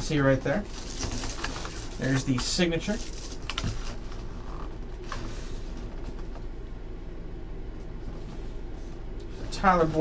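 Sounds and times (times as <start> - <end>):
low hum of room tone: 0.0 - 10.0
plastic bag crinkling: 0.4 - 4.3.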